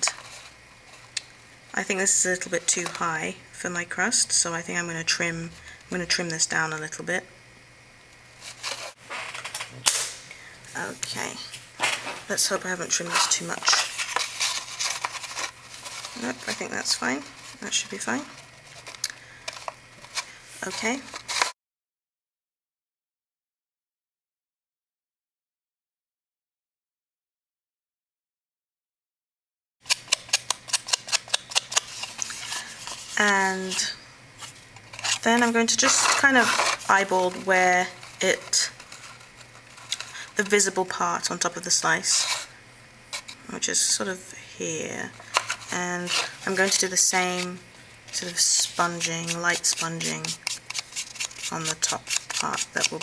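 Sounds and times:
paper rustling: 0.0s - 1.1s, 8.4s - 9.7s, 11.8s - 21.5s, 29.9s - 40.7s, 45.2s - 53.0s
sponge brush dabbing on ink pad: 48.1s - 53.0s.

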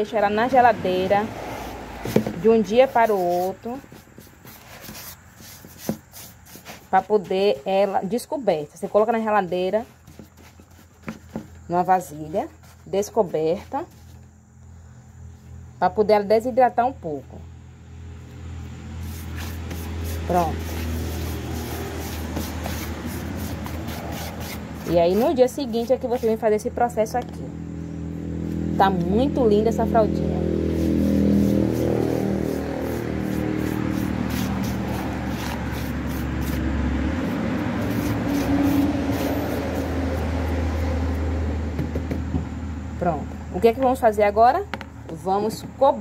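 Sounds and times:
gritty scratching of salt: 2.6s - 8.2s, 19.0s - 26.6s, 30.8s - 40.3s
salt rubbed into meat: 19.0s - 24.1s, 31.4s - 36.6s.

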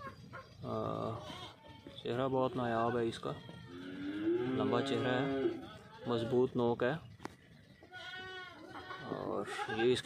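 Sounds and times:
goat bleating: 0.8s - 1.9s, 3.4s - 6.4s, 7.8s - 10.0s.

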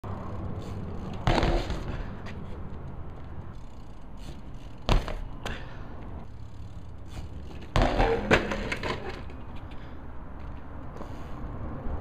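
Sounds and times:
bike tyres rolling on concrete: 0.0s - 12.0s
bike clattering impact: 0.4s - 5.8s, 6.5s - 10.6s.

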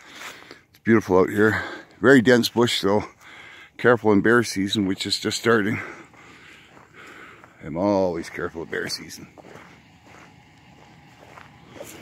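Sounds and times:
footsteps on twigs: 4.6s - 12.0s.

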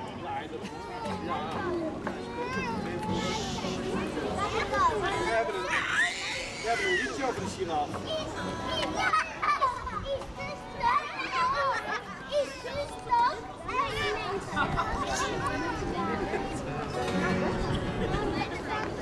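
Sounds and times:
crowd chattering and calling out: 0.0s - 19.0s.

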